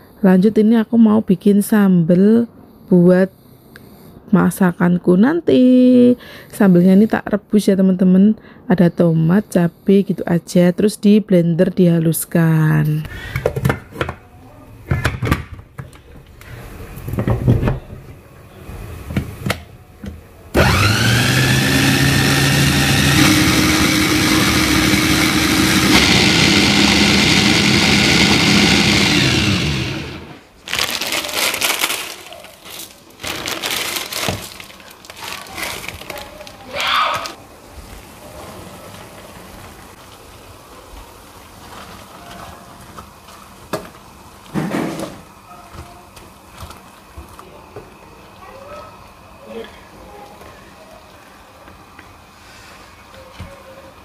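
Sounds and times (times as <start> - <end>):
kitchen knocks and clatter: 13.3 - 14.2
blender motor whine: 20.6 - 30.4.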